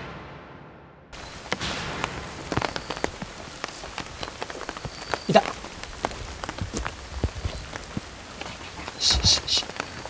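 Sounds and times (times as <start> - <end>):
steady rain: 1.2 - 10.0
drops hitting plastic umbrella: 1.4 - 8.1.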